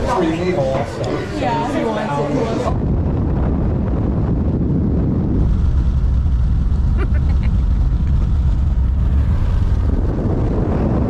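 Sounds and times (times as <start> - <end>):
road and wind rumble: 0.0 - 11.0
wind buffeting microphone: 0.0 - 11.0.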